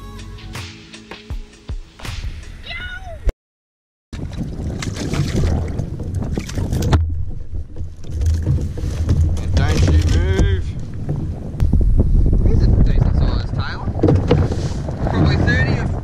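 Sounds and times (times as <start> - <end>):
wind buffeting microphone: 4.2 - 16.0
knocks: 14.0 - 14.6.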